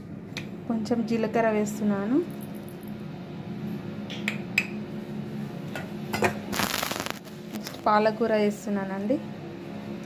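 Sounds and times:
dry rustle with crackling: 6.6s - 7.9s.

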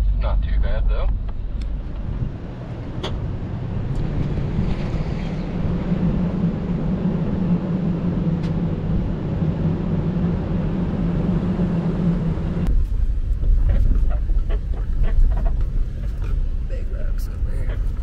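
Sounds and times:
deep low rumble in cabin: 0.0s - 18.0s
vehicle engine: 0.0s - 18.0s.

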